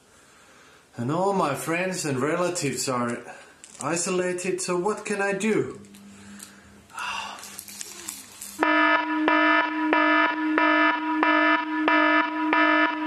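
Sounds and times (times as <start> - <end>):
pulsing electronic alarm tone: 8.6 - 13.0.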